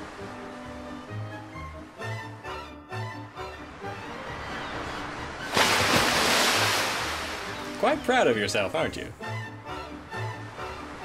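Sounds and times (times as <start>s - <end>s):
low pulsing string music: 0.0s - 11.0s
rush of water: 3.6s - 8.0s
loud splash into water: 5.5s - 7.8s.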